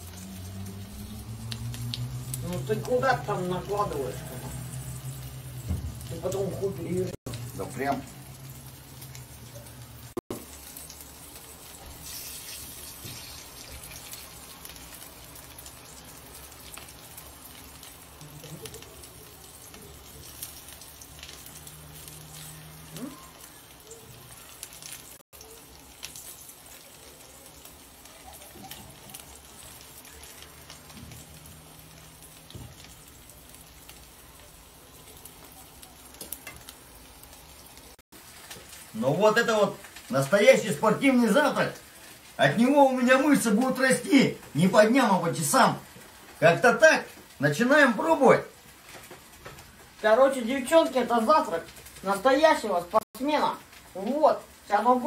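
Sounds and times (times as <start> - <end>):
pancakes sizzling in oil: 0.0 - 55.0.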